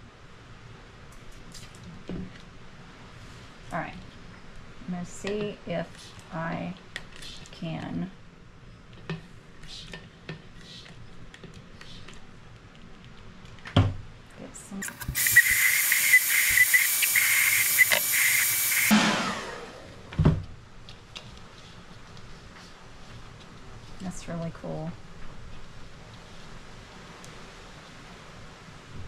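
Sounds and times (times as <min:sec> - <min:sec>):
hair dryer running: 0:14.8 - 0:20.2.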